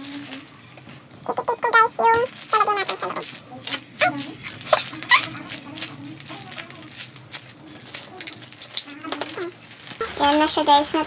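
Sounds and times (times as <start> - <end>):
plastic sheet crinkling: 0.0 - 11.0.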